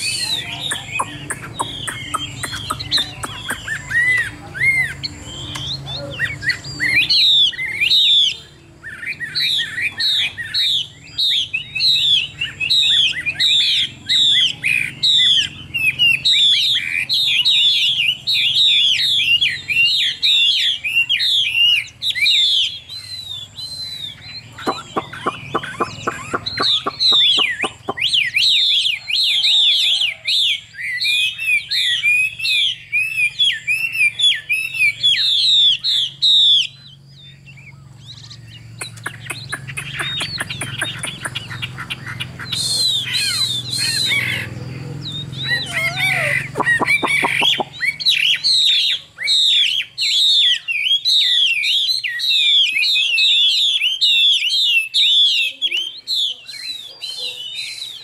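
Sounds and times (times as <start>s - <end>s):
bird singing whistled phrases: 0.0s - 41.7s, 42.4s - 58.0s.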